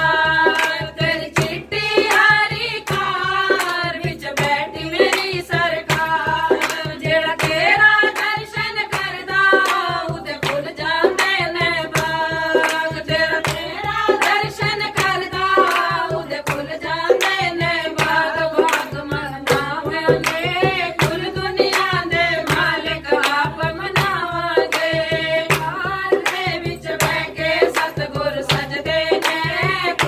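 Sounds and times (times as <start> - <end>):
dholak drum beat: 0.0 - 30.0
hand-clapping: 0.0 - 30.0
women singing together: 0.0 - 30.0.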